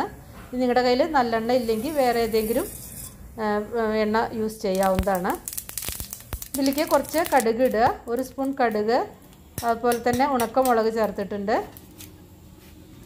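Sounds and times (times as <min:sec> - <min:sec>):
seeds sizzling in hot oil: 0:01.3 - 0:03.3, 0:04.6 - 0:07.8
woman talking: 0:03.4 - 0:05.4, 0:06.6 - 0:11.8.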